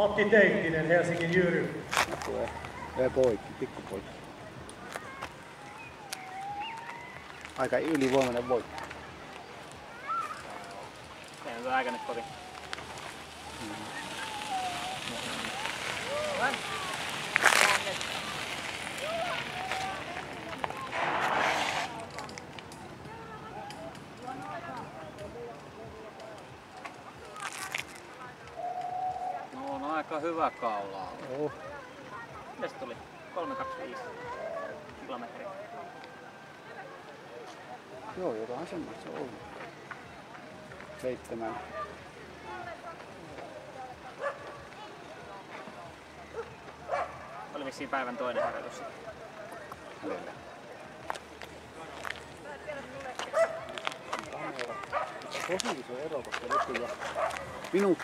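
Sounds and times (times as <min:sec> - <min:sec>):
distant people talking: 0:00.0 - 0:58.0
short rush of noise: 0:20.8 - 0:22.1.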